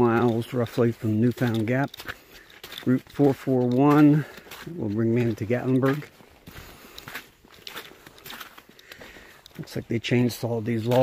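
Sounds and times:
boot footsteps on wet slushy wood: 0.0s - 11.0s.

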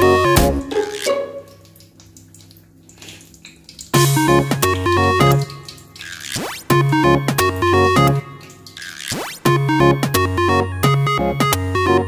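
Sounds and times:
upbeat synth music: 0.0s - 1.4s, 4.0s - 12.0s.

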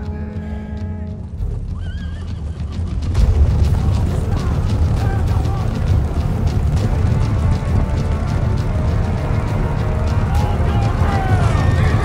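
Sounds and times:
steady low rumble: 0.0s - 12.0s
horse whinnying: 1.7s - 3.0s.

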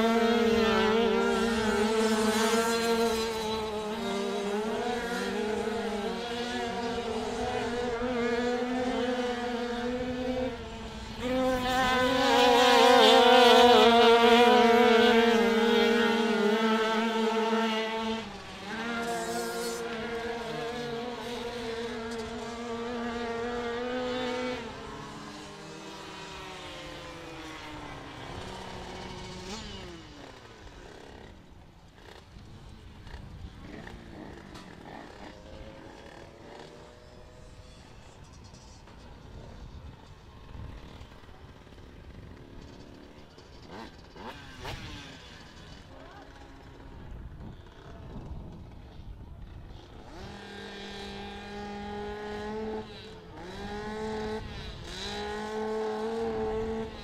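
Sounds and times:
motorbike engines revving high: 0.0s - 57.0s.

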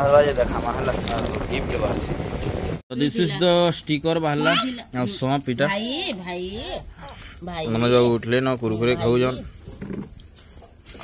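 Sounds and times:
people talking: 0.0s - 2.1s, 2.9s - 9.5s.

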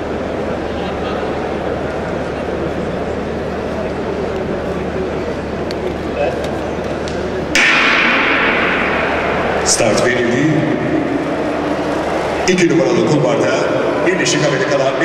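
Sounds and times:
murmur of arena crowd: 0.0s - 15.0s.

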